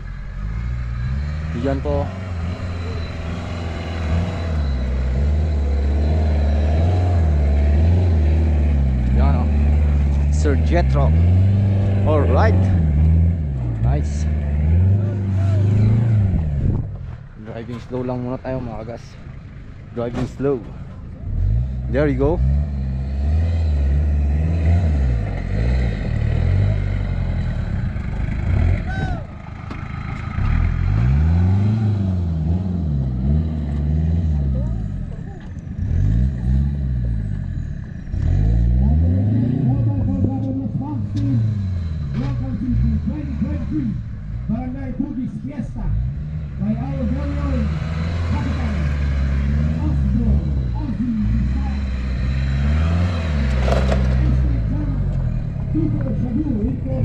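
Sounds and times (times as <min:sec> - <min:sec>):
off-road vehicle engine revving: 0:00.0 - 0:57.0.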